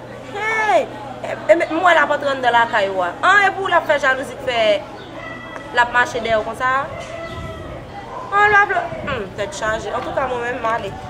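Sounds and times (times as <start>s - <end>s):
woman speaking: 0.3s - 4.8s, 5.7s - 7.0s, 8.3s - 11.0s
rooster crowing: 5.2s - 5.9s.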